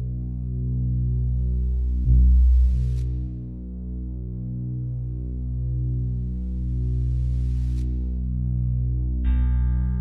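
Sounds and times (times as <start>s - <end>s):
ambient music drone: 0.0s - 10.0s.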